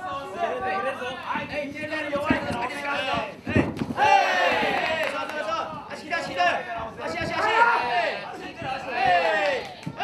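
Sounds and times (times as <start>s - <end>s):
spectators shouting and chattering: 0.0s - 10.0s.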